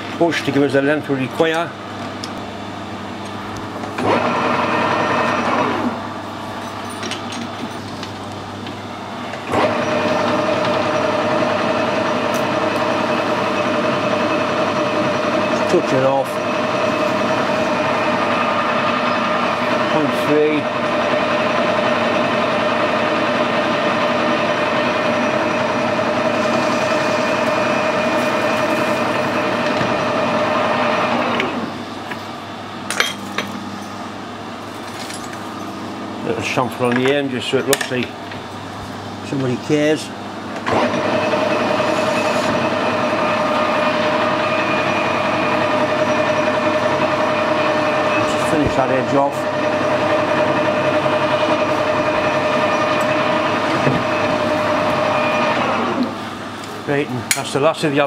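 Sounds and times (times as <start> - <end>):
lathe spindle running: 0.0 - 58.0
lathe cutting with ringing tone: 4.0 - 6.4, 9.4 - 32.0, 40.7 - 56.7.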